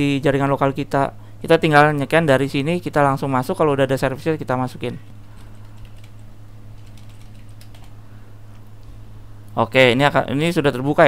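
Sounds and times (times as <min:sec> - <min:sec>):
steady low hum: 0:00.0 - 0:11.0
computer keyboard keys clicking: 0:05.3 - 0:08.0.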